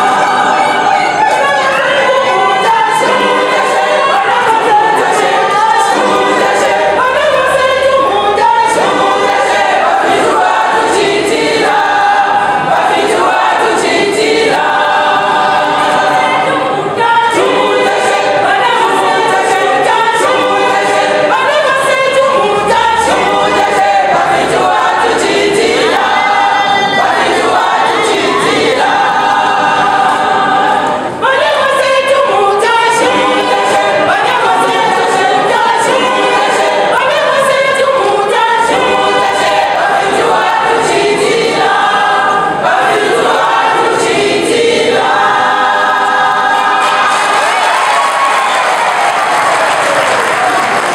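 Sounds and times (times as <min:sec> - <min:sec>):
women's choir singing gospel: 0:00.0 - 0:50.9.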